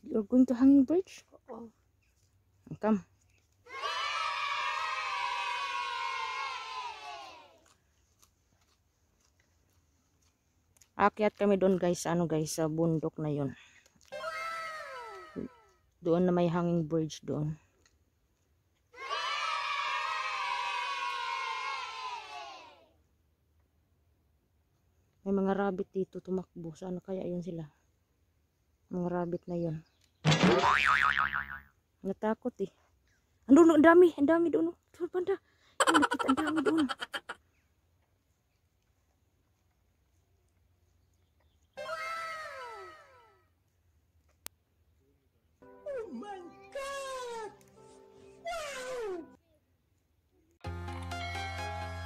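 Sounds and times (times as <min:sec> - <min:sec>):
children cheering: 0:03.7 - 0:07.6, 0:14.1 - 0:15.5, 0:19.0 - 0:22.8, 0:41.8 - 0:43.1.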